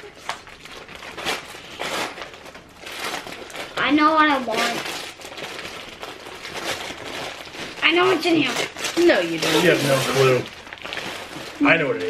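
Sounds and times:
wrapping paper crinkling and tearing: 0.0 - 12.0.

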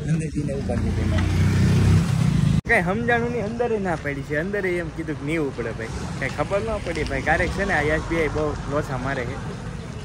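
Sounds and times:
street traffic rumble: 0.0 - 10.0
man talking: 2.7 - 9.6.

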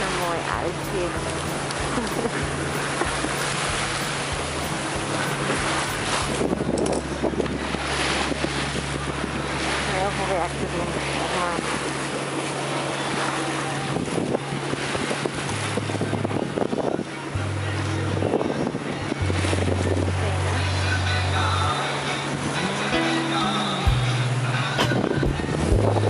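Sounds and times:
wind buffeting microphone: 0.0 - 9.5, 13.8 - 17.1
waves rushing past hull: 0.0 - 26.0.

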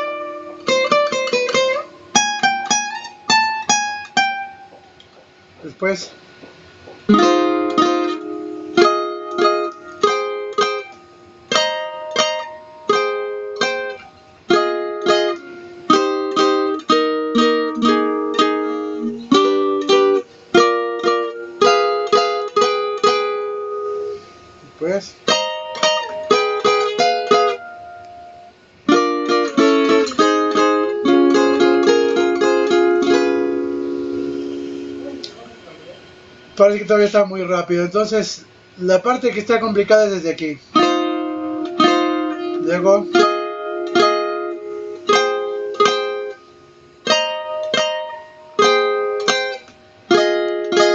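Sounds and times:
small nylon-string guitar plucking: 0.0 - 5.3, 6.4 - 36.0, 40.7 - 50.9.

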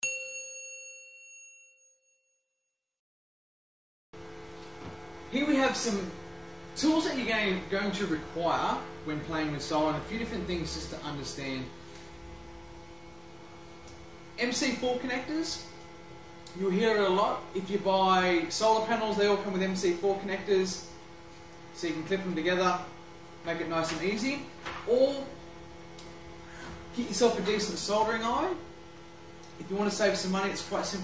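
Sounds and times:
bell-like chime: 0.0 - 2.7
electrical hum: 4.2 - 31.0.

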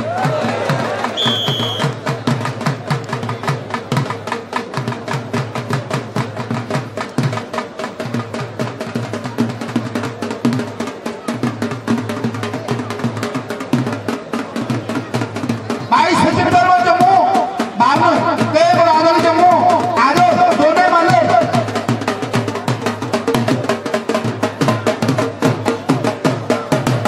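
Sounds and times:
drums played fast: 0.0 - 27.0.

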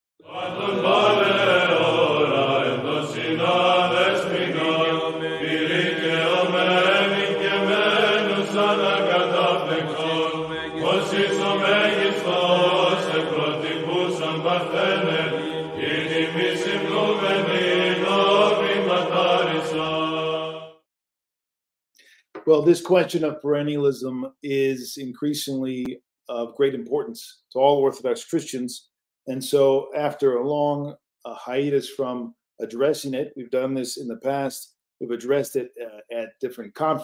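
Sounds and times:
voices chanting a melody: 0.2 - 20.7
low held drone note: 0.3 - 19.8.

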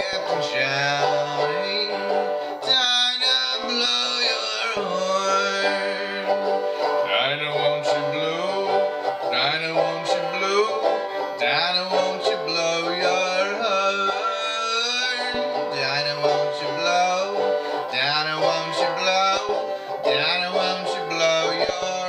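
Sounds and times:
banjo playing: 0.0 - 22.0
man singing: 0.0 - 22.0.

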